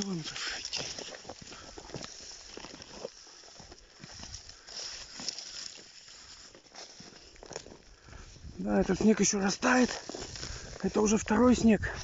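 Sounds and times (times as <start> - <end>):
footsteps crunching in snow: 0.0 - 12.0.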